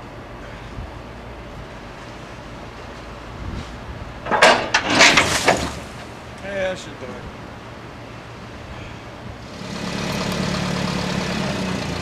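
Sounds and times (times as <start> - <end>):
metal clanks: 4.2 - 5.9
loose load sliding out: 4.3 - 6.1
forklift engine running: 9.3 - 12.0.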